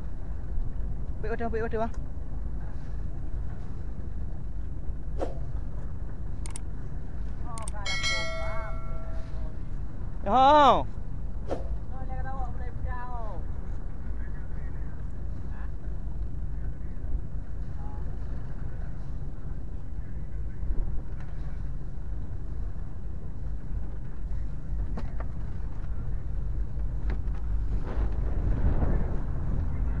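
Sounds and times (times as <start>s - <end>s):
boat engine rumbling: 0.0s - 30.0s.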